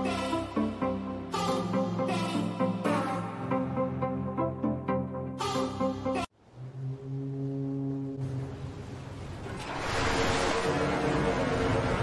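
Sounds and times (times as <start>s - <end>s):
low steady horn note: 6.4s - 8.7s.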